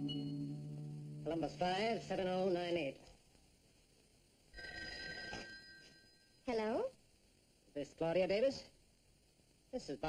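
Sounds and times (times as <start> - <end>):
telephone ringing: 4.5 - 6.4.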